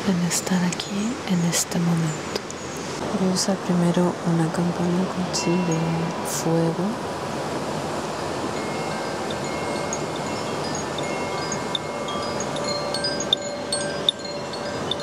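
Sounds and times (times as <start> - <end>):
bamboo wind chime tones: 5.4 - 6.1, 8.1 - 15.0.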